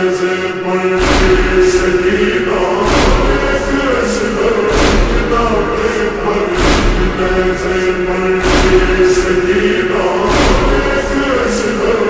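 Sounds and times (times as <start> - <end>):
voices chanting a lament: 0.0 - 12.0
deep thump: 1.0 - 2.1, 2.8 - 11.4.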